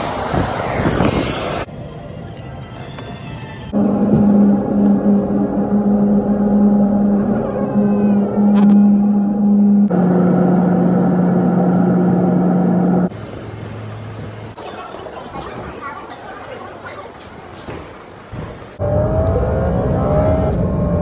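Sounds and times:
airliner engine drone: 0.0 - 14.6, 18.8 - 21.0.

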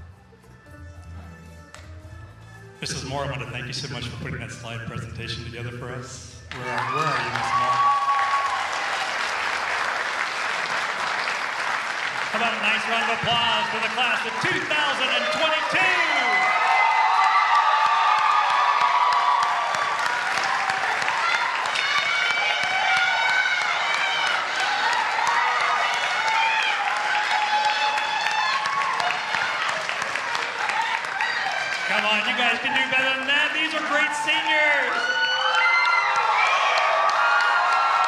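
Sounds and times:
crowd shouting and cheering: 6.1 - 38.0
audience applauding: 6.5 - 38.0.

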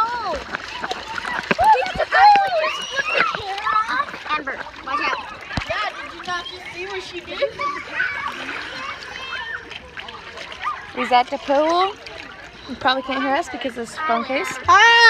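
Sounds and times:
muffled water splashing: 0.0 - 15.0.

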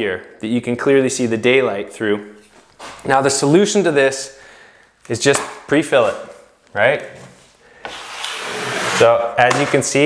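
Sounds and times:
drywall knife scraping: 7.8 - 9.9.

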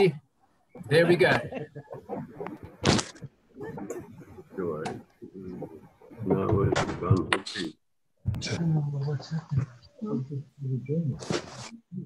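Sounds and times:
people talking over video call: 0.0 - 12.0.

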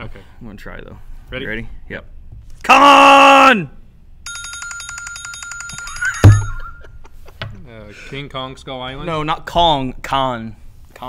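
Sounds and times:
smartphone timer alarm ringing: 4.3 - 6.9.

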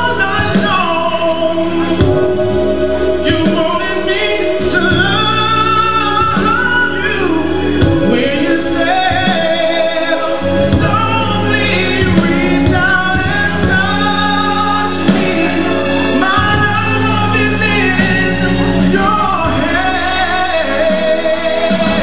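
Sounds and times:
man singing into microphone: 0.0 - 22.0
music with bass and beat: 0.0 - 22.0.

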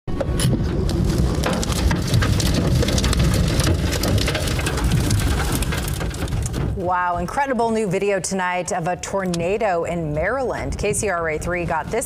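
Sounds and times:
deep wind rumble: 0.3 - 7.4
rain beating on a car: 0.6 - 6.8.

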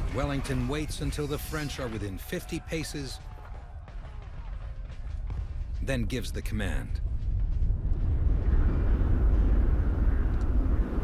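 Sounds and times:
deep heavy low rumble: 7.0 - 11.0.

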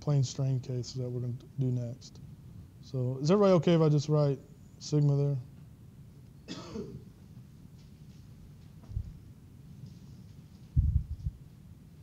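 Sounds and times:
faint room hiss: 0.0 - 12.0
man clearing throat: 6.5 - 7.1.

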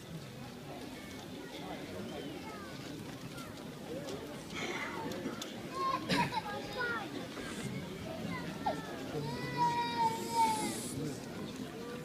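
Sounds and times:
crowd chatter: 0.0 - 12.0
children calling: 4.5 - 11.3.

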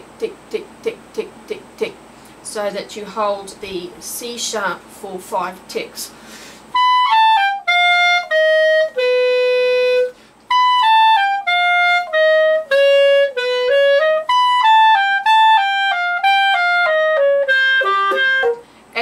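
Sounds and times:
breath: 6.1 - 6.7, 10.2 - 10.4, 18.6 - 18.9
solo clarinet: 6.7 - 18.7.

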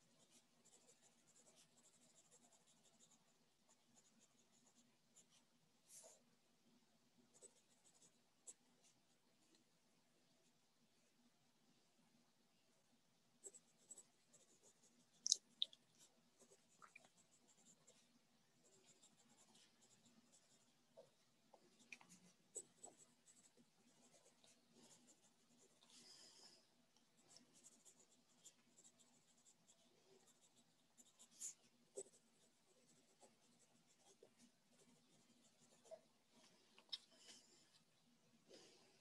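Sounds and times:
pen scratching on paper: 0.0 - 6.2, 7.3 - 9.0, 16.0 - 26.2, 27.2 - 36.5.

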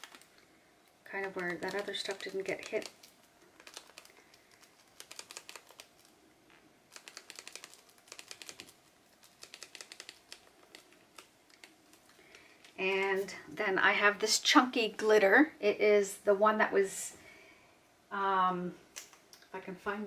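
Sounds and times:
glitter bottle rattling: 1.1 - 6.0.

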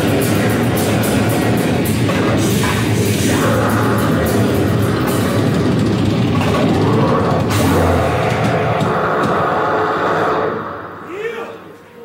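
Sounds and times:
distorted guitar and amplifier noise: 0.0 - 11.1.

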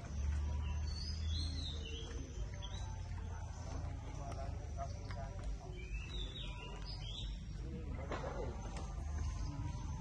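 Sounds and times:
bird chirping: 0.0 - 10.0
distant people talking: 0.0 - 10.0.

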